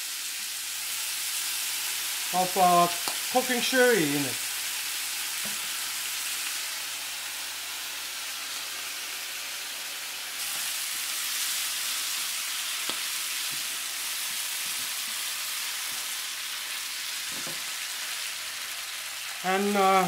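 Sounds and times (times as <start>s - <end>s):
food sizzling in a frying pan: 0.0s - 20.0s.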